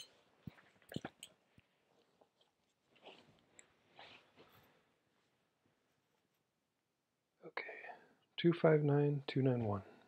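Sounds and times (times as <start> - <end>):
man speaking softly: 7.4 - 10.0.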